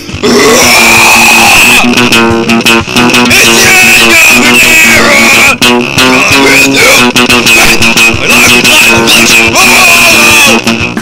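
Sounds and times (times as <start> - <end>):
emo rock song: 0.0 - 11.0
harsh noise burst: 0.0 - 11.0.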